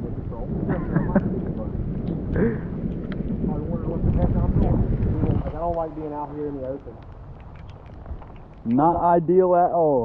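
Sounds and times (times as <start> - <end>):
wind buffeting microphone: 0.0 - 10.0
voices talking: 8.6 - 10.0.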